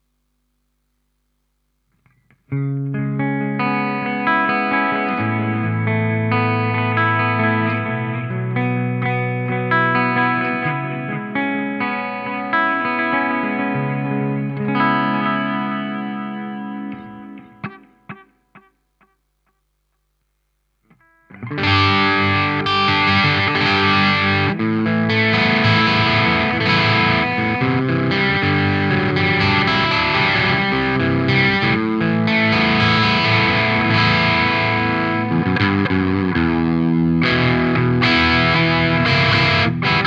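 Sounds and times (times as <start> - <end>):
electric guitar ringing chords: 2.0 - 19.2, 20.9 - 40.0.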